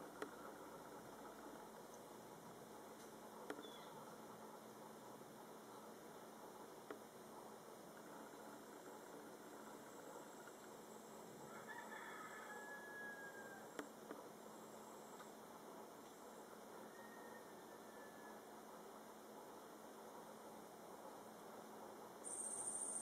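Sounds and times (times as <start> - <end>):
faint background hiss: 0.0 - 23.0.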